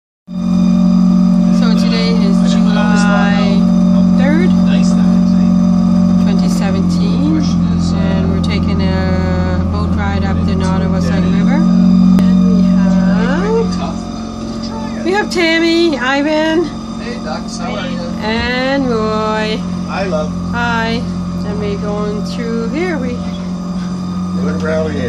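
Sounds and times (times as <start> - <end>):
deeper engine drone: 0.3 - 25.0
outboard motor running: 0.3 - 25.0.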